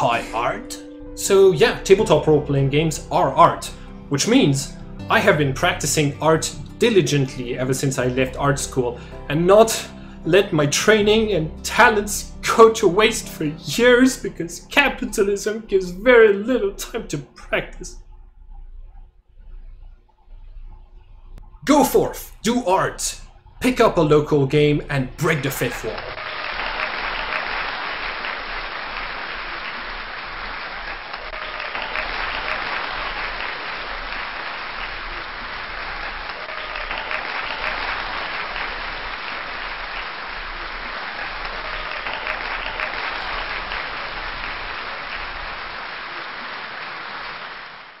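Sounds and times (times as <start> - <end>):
crowd applause: 25.2 - 48.0.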